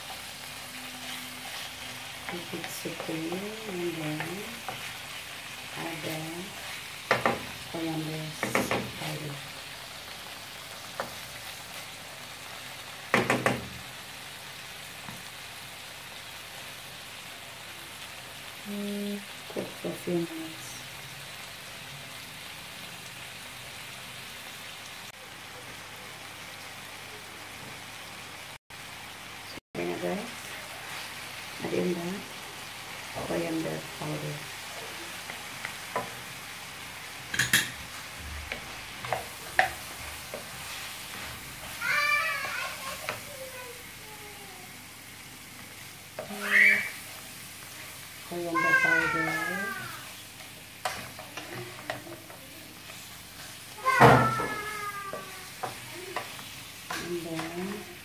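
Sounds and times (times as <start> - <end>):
chicken and onions sizzling in pan: 0.0 - 58.0
wooden spatula scraping pan: 1.0 - 7.7, 38.5 - 43.3.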